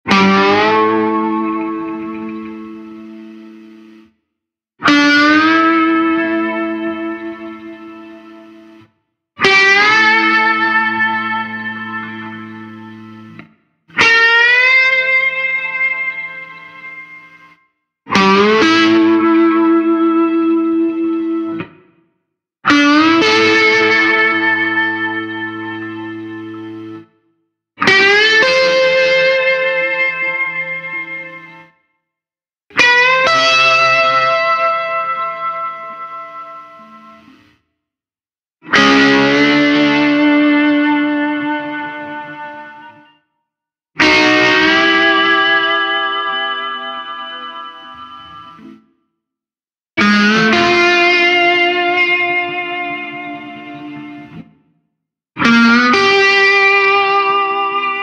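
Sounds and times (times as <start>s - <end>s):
slide guitar chords: 0.0s - 4.1s, 4.8s - 21.8s, 22.6s - 27.1s, 27.8s - 31.8s, 32.7s - 37.6s, 38.6s - 43.1s, 44.0s - 48.9s, 50.0s - 54.6s, 55.4s - 58.0s.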